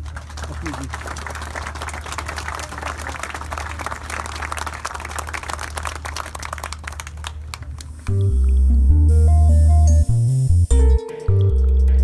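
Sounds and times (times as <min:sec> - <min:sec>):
crowd applauding: 0:00.0 - 0:08.1.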